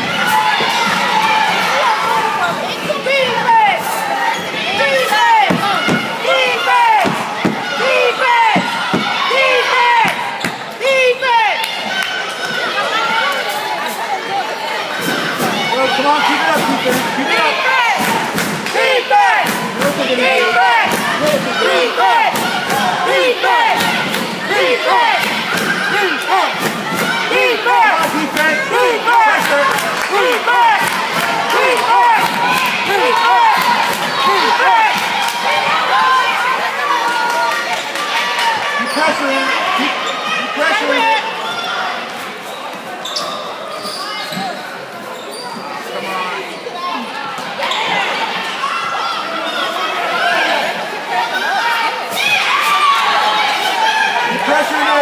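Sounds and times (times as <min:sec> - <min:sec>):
spectators talking and calling out: 0:00.0 - 0:55.0.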